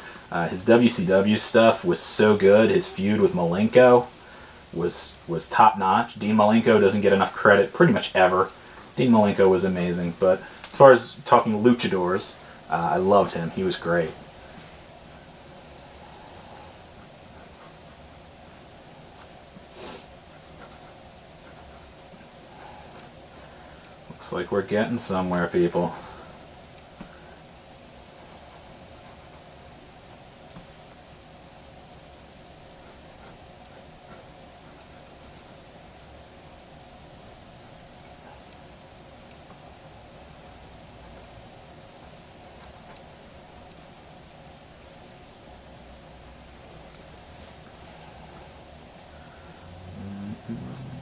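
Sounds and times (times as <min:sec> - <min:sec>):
pencil scratching on paper: 0:20.3 - 0:21.9, 0:32.8 - 0:36.3, 0:50.7 - 0:51.0.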